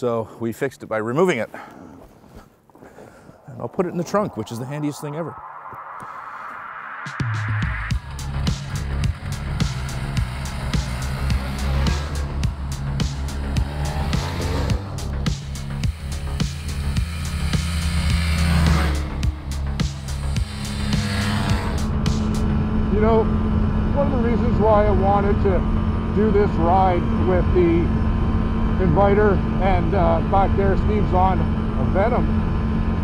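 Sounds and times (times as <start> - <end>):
snowmobile engines revving: 7.9 - 33.0.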